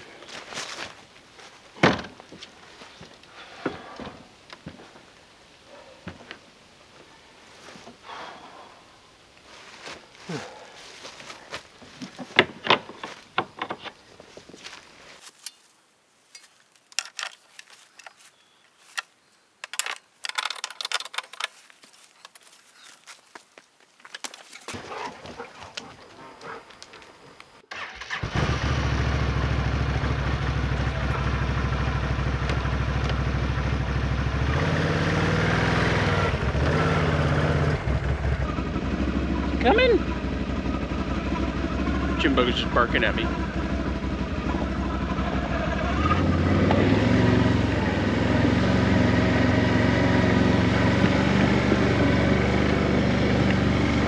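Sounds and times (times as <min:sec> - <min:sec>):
knocks and clicks of handling: 0:11.9 - 0:14.0, 0:18.9 - 0:21.6
atv engine starting and running: 0:27.7 - 0:54.0.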